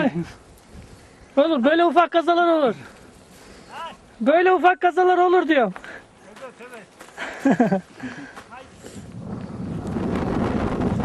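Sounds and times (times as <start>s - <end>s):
wind buffeting microphone: 8.2s - 11.0s.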